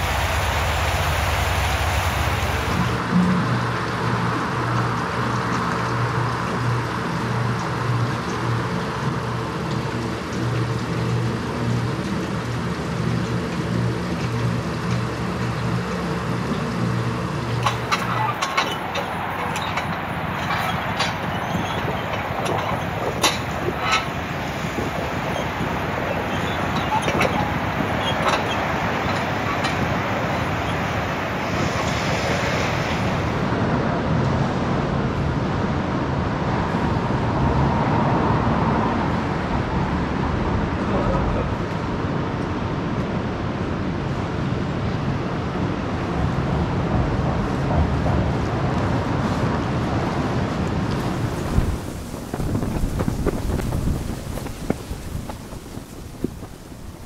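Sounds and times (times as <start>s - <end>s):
wind on microphone: 0.0s - 3.4s, 17.6s - 42.3s, 46.2s - 57.0s
traffic noise: 0.0s - 57.0s.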